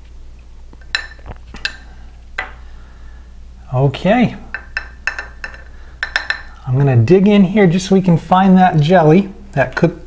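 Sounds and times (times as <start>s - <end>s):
teaspoon clinking on mug: 4.5s - 6.6s.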